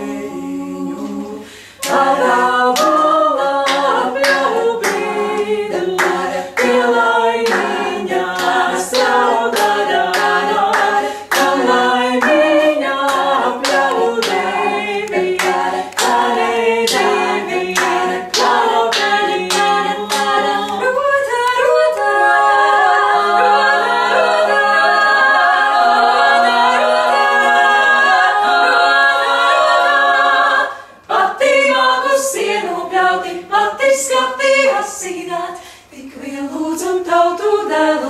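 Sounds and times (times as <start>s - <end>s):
female vocal group singing harmony: 0.0s - 38.0s
hand claps: 3.6s - 6.8s, 7.4s - 7.8s, 8.4s - 17.2s, 17.8s - 22.1s.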